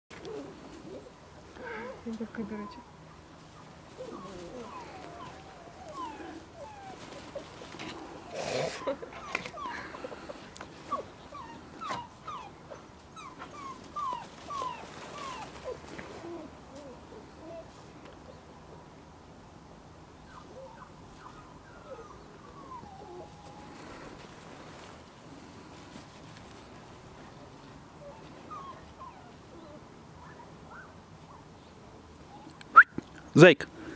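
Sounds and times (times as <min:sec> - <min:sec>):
puppies whimpering and yipping: 0:03.9 - 0:17.8, 0:20.2 - 0:24.2, 0:28.0 - 0:31.4.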